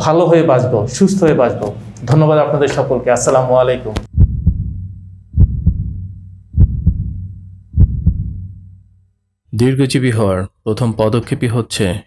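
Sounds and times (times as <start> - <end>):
heartbeat thumps: 4.0 - 8.9
low hum: 4.1 - 9.4.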